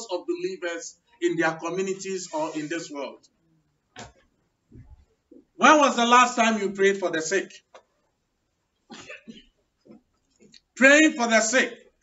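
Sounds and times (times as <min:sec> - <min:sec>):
person coughing: 0:08.9 - 0:09.6.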